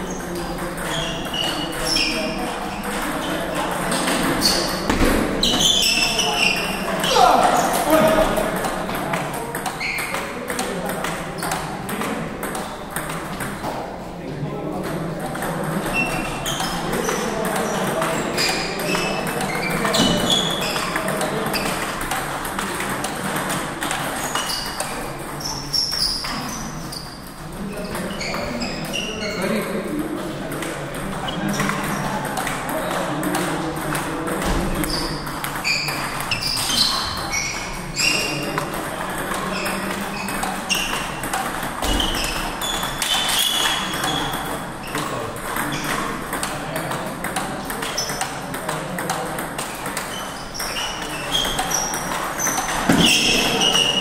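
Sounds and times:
table tennis balls clicking: 0.1s - 13.8s, 14.6s - 54.0s.

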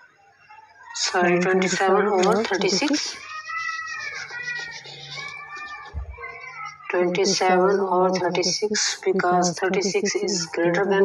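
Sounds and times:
cat meowing: 3.2s - 6.9s.

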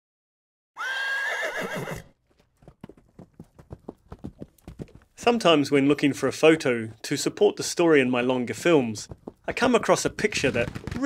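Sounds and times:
horse whinnying: 0.8s - 2.2s
hooves clip-clopping: 1.5s - 6.0s, 7.9s - 11.0s.

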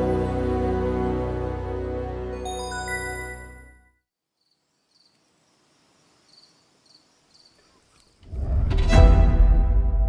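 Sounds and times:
faint insect chirps: 4.2s - 8.3s.

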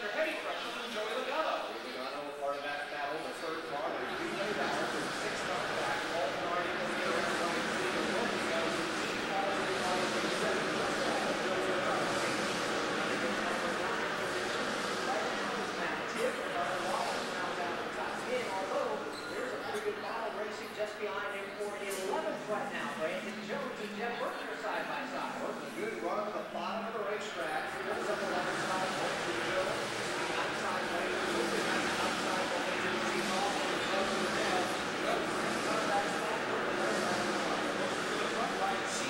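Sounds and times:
people chattering: 0.0s - 39.0s
indistinct voices talking: 3.1s - 39.0s.

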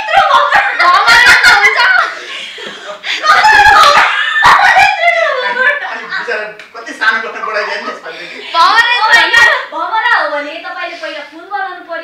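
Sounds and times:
excited high-pitched voices: 0.0s - 2.3s, 3.2s - 6.2s
laughter: 0.0s - 6.4s.

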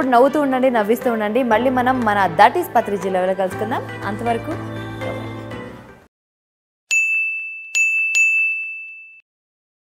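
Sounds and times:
bright bell-like dings: 6.9s - 9.2s.

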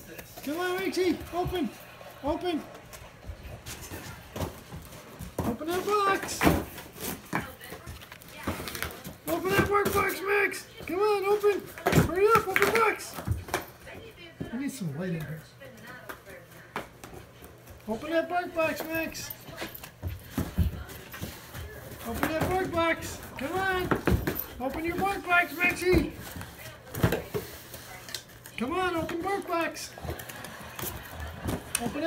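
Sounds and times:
dog pawing cardboard box: 3.6s - 14.5s, 18.6s - 28.0s
box falling thumps: 21.9s - 25.2s.

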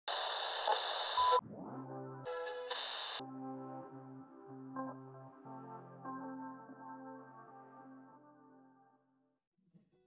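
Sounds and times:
radio static hiss: 0.1s - 1.4s
held synthesizer chord: 1.4s - 2.5s, 3.2s - 9.0s.

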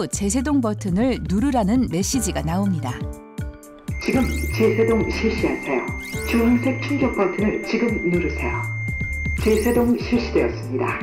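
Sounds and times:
background music with bass line: 0.0s - 11.0s
recorded voice prompt: 3.9s - 11.0s.

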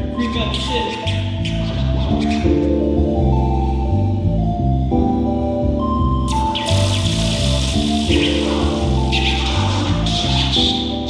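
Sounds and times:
electronic instrumental music: 0.0s - 11.0s
steady high hiss: 6.3s - 11.0s.

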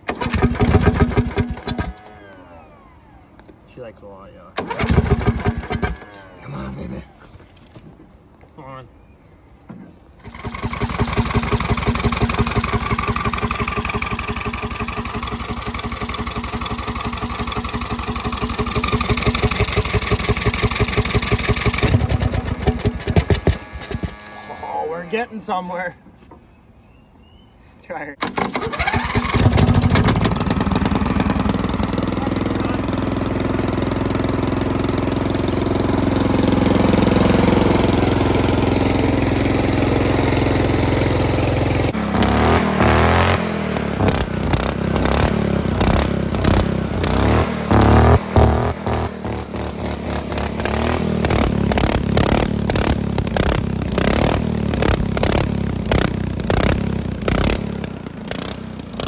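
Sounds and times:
lawn mower engine running: 0.0s - 3.7s, 4.6s - 6.5s, 10.2s - 25.6s, 28.2s - 59.0s.

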